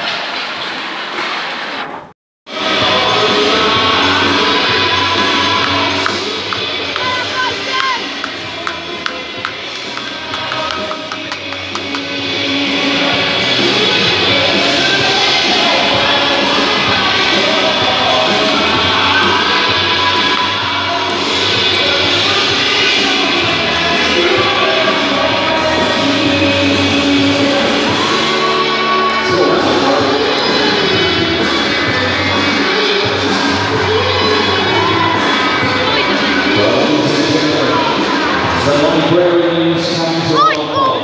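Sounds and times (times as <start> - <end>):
crowd cheering and shouting: 2.5 - 41.0
music over sound system: 2.5 - 41.0.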